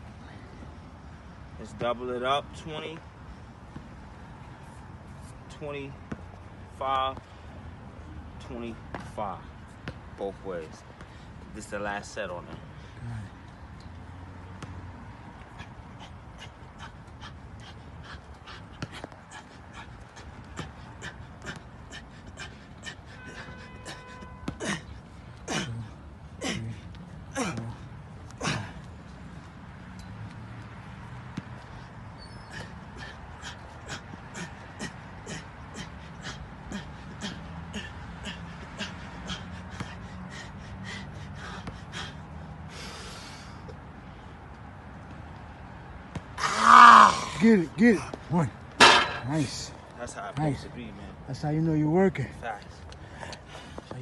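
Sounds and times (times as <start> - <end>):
man panting: 15.4 - 29.1, 31.7 - 43.9
sharp exhaled breaths: 31.7 - 44.4.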